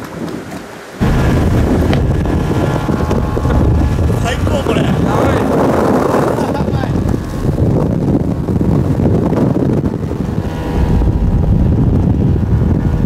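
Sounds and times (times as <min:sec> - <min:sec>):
boat running at speed: 0:00.0 - 0:13.0
wind rumble on microphone: 0:00.0 - 0:13.0.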